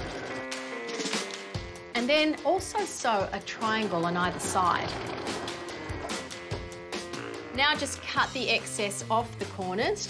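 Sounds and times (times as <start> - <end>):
background music with soft beat: 0.0 - 10.0.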